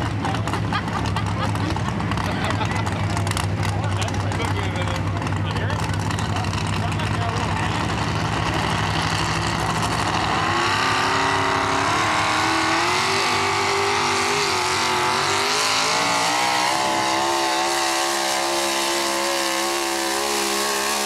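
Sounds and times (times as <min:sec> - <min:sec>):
truck engine revving hard: 0:00.0 - 0:21.0.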